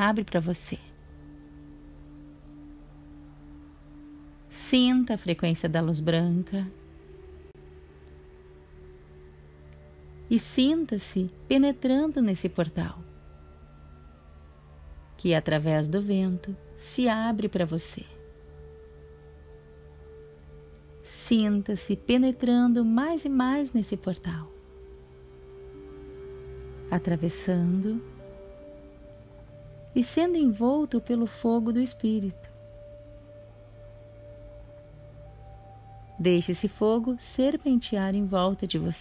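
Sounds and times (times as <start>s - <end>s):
low even drone: 0.0s - 39.0s
sustained steady tone: 0.0s - 39.0s.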